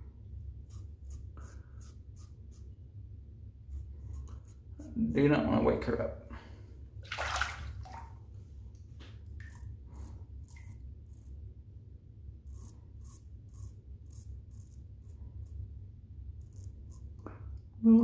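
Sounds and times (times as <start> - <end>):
low steady hum: 0.0 - 18.0
razor scraping stubble: 0.6 - 2.8, 3.6 - 4.9, 9.4 - 11.4, 12.4 - 15.7, 16.4 - 17.2.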